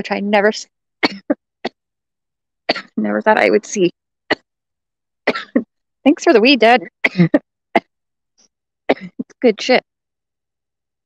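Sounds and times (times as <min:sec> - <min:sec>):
woman coughing: 0:01.0 - 0:01.4, 0:05.3 - 0:05.6, 0:07.0 - 0:07.9, 0:08.9 - 0:09.3.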